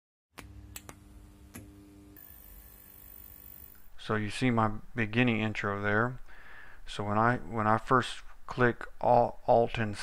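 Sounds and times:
faint steady hum: 0:00.4 - 0:10.0.

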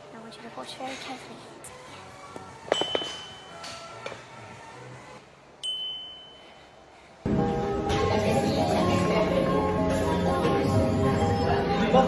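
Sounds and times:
metal clink: 0:02.7 - 0:03.8.

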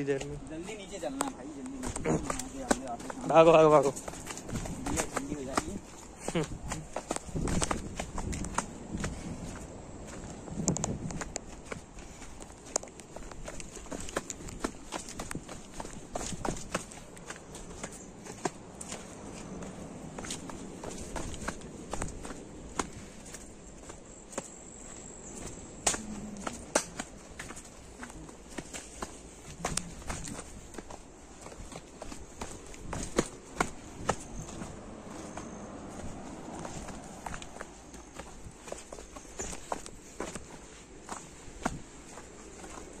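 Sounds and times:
footsteps crunching on gravel: 0:00.0 - 0:43.0
low outdoor background: 0:00.0 - 0:43.0.

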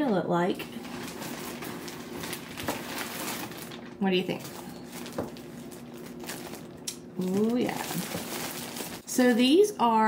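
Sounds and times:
plastic bag crinkling: 0:00.7 - 0:09.6.

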